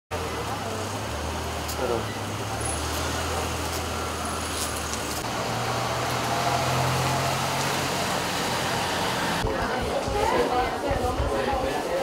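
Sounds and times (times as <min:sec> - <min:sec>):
road traffic rumble: 0:00.1 - 0:11.0
faint voices: 0:08.0 - 0:12.0.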